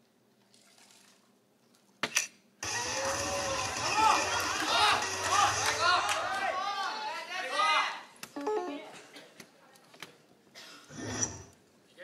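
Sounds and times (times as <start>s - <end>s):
hall chatter: 2.6s - 7.2s.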